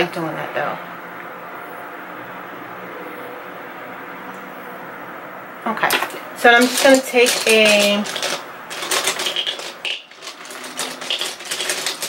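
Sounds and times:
makeup brushes clicking together: 5.8s - 12.0s.

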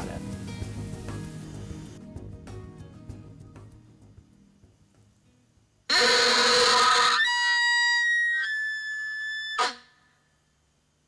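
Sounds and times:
elk bugle call: 5.9s - 10.1s.

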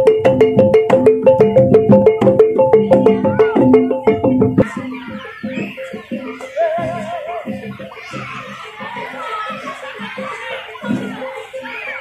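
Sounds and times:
gamelan music: 0.0s - 12.0s.

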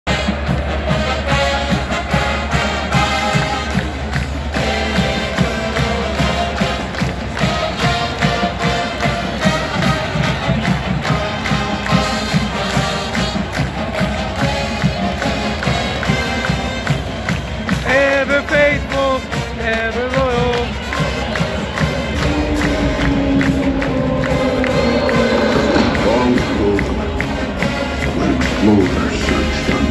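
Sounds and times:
crowd noise: 0.0s - 29.9s
marching band playing: 0.1s - 29.9s.

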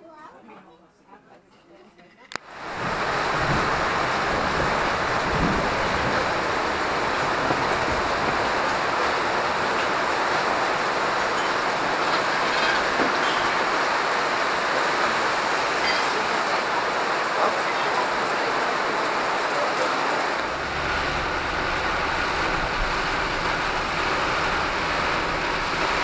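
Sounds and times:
heavy rain on canvas awning: 2.4s - 26.0s.

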